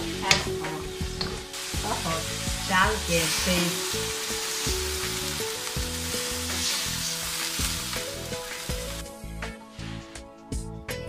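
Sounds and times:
food sizzling in a wok: 0.0 - 10.1
wooden spatula knocking wok: 1.1 - 2.0.

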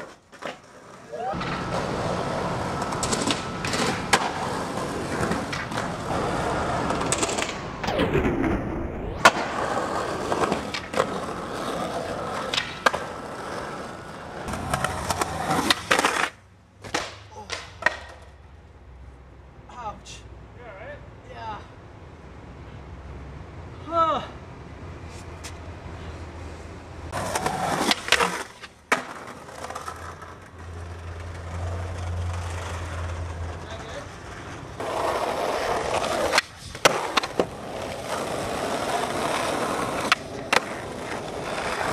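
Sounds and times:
skateboard clacks: 0.0 - 7.8, 9.2 - 18.4, 27.1 - 41.9
skateboard wheels rolling: 0.0 - 18.5, 25.0 - 41.9
skateboard landing smack: 16.8 - 18.2.

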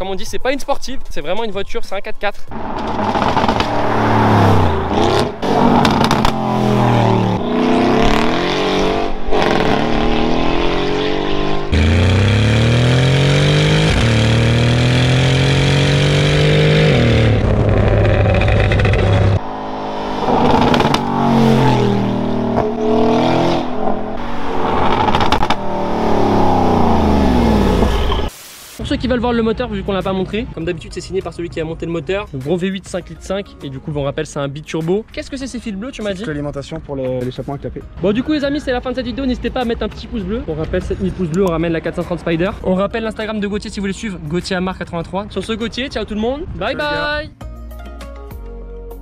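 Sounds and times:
car engine accelerating hard: 2.5 - 28.3.

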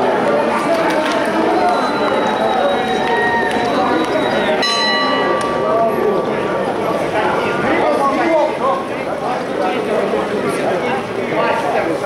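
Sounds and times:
spectators chattering: 0.0 - 12.0
bell ringing: 1.4 - 6.0.

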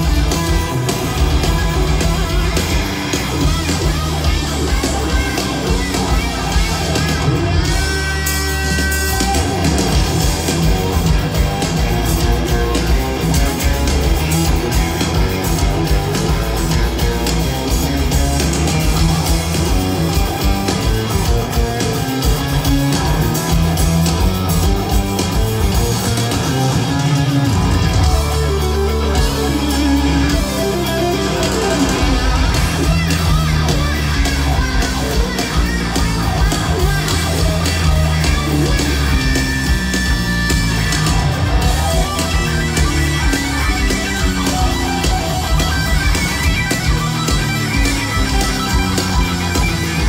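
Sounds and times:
electric guitar riffing: 0.0 - 50.0
live hard rock band playing: 0.0 - 50.0
long held bass notes: 0.0 - 50.0.

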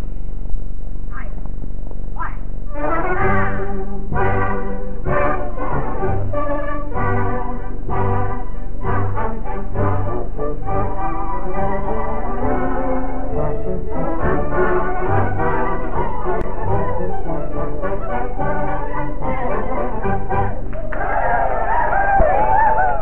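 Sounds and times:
trumpets playing melody: 2.7 - 20.6
tubas playing bass notes: 2.7 - 23.0.

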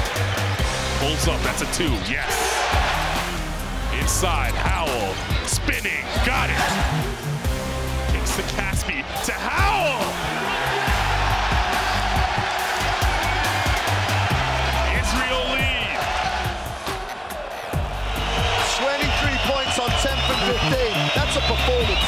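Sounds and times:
arena crowd noise: 0.0 - 22.0
background music with bass beat: 0.0 - 22.0.

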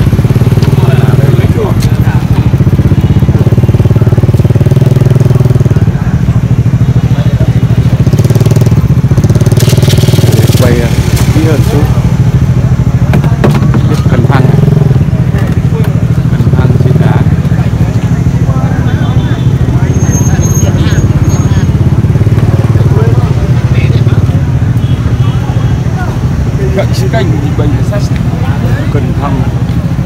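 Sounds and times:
people talking: 0.0 - 8.7, 10.1 - 30.0
small engine idling: 0.0 - 30.0.

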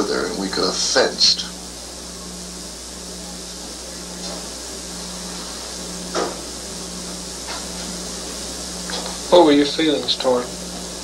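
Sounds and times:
film soundtrack hiss and hum: 0.0 - 11.0.

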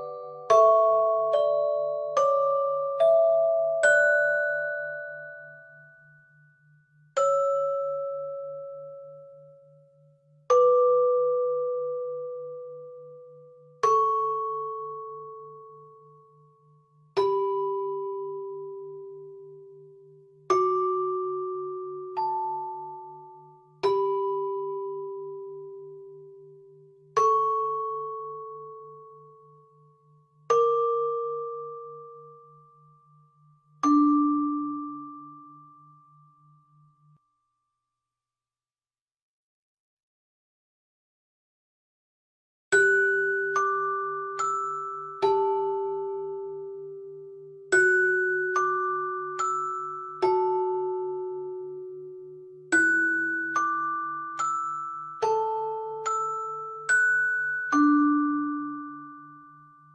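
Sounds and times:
music-box note ringing: 52.7 - 59.9.

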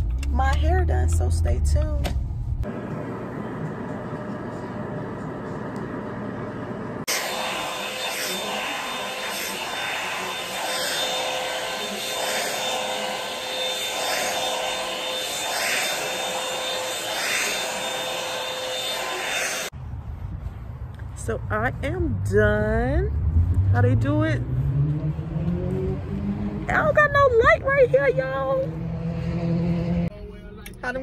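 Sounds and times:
hood dryer humming: 0.1 - 19.8, 23.5 - 30.1
hair dryer running with whine: 2.6 - 19.8.

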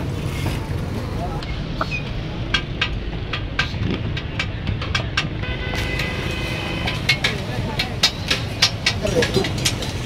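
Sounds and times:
traffic: 0.0 - 10.0
crowd voices: 0.2 - 10.0
metal utensils clattering on woks: 6.0 - 10.0.

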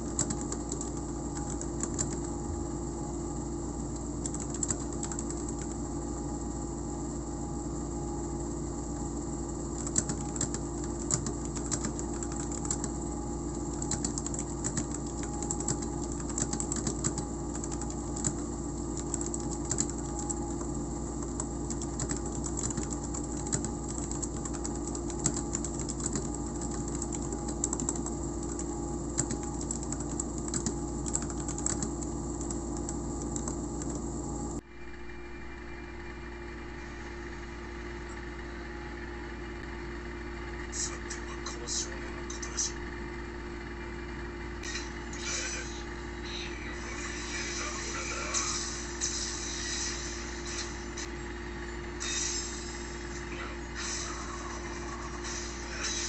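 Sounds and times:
mechanical keyboard typing: 0.0 - 2.4, 3.9 - 5.8, 9.7 - 34.0
steady background hum: 0.0 - 56.0.

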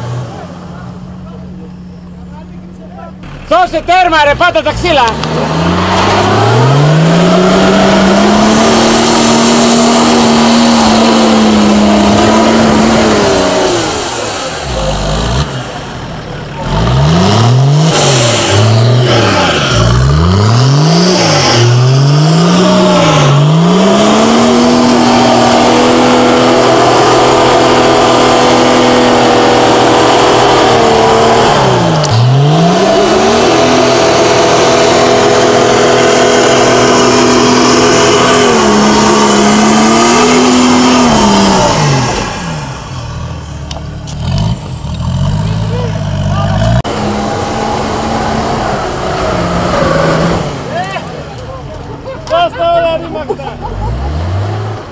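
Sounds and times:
diesel engine revving under load: 0.0 - 54.9.

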